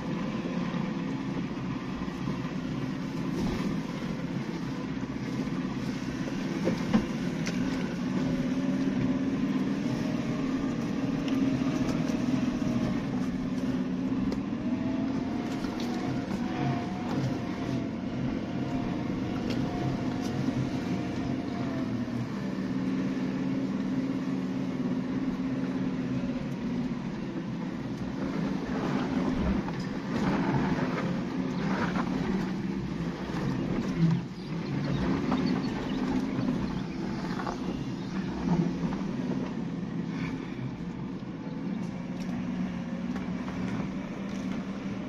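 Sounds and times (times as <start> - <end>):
car engine running at low speed: 0.0 - 45.0
vehicle knocks and rattles: 28.8 - 39.8.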